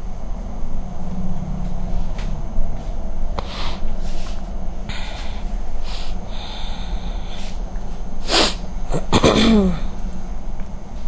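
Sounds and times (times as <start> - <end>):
low steady hum: 0.0 - 11.0
woman breathing sharply: 4.9 - 7.7.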